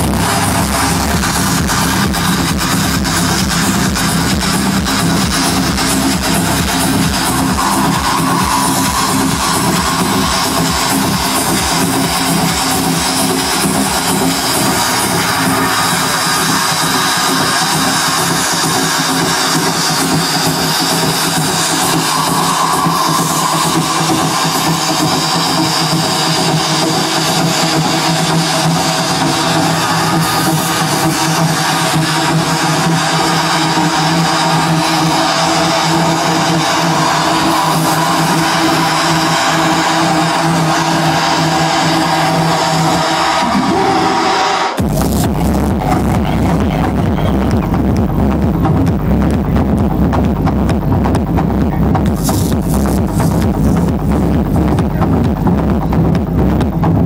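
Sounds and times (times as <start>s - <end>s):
loud electronic dance music: 0.0s - 57.0s.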